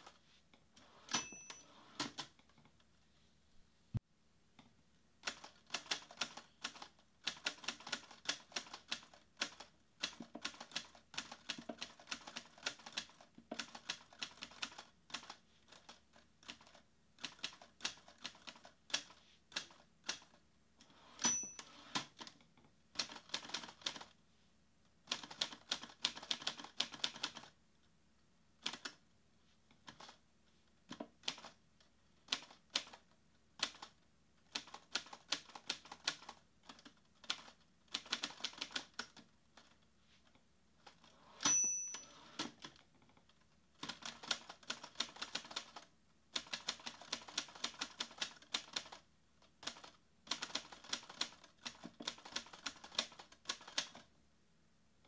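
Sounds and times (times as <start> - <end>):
typewriter bell ding: 1.1 - 2.0, 21.2 - 21.9, 41.4 - 42.4.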